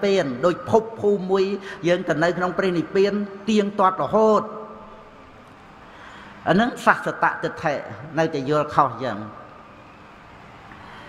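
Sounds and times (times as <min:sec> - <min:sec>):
man speaking: 0:00.0 - 0:04.7, 0:06.4 - 0:09.5.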